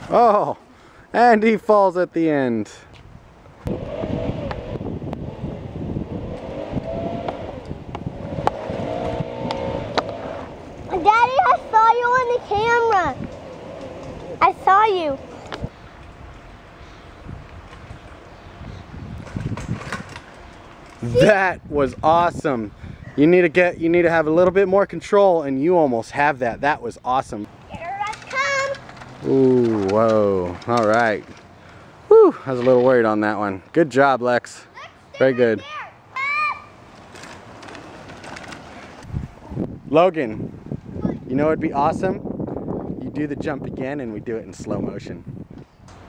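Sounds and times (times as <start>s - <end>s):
faint outdoor hiss: 0.0s - 46.0s
wind rumbling on microphone: 3.0s - 25.0s, 37.8s - 46.0s
child's high-pitched call: 27.7s - 28.8s, 34.8s - 36.7s.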